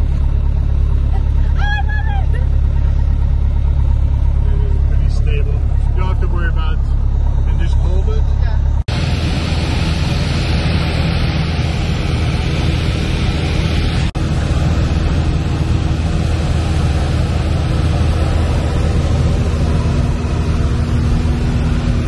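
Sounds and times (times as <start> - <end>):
propeller plane engine droning: 0.0 - 22.0.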